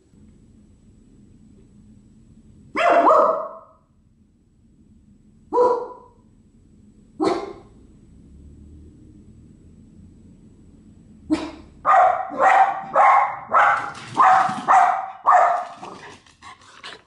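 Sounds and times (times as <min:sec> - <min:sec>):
small dog barking: 0:02.7 - 0:03.8, 0:05.5 - 0:06.1, 0:07.2 - 0:07.7, 0:11.3 - 0:15.9.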